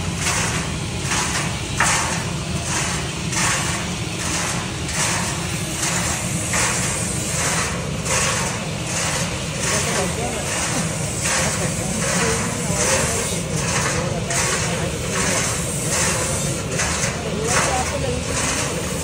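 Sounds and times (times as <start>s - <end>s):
drum roaster low rumble: 0.0s - 19.0s.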